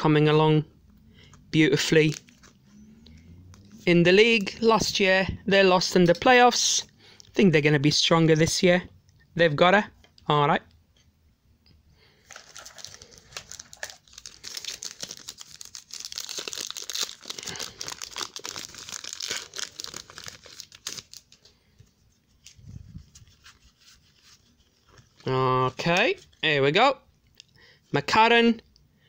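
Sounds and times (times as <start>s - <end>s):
foil wrapper crinkling and tearing: 1.8s - 2.6s, 12.2s - 21.5s.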